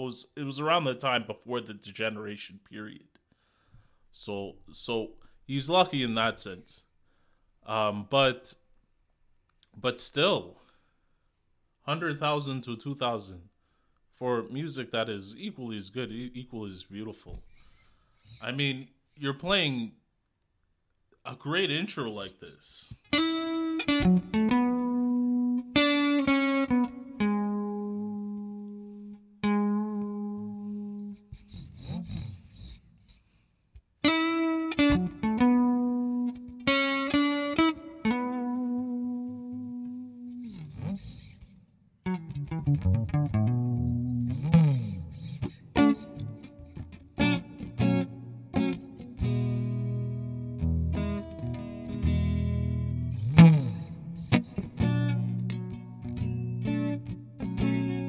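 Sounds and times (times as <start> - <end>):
electric blues guitar: 22.9 - 32.8, 34.0 - 58.0.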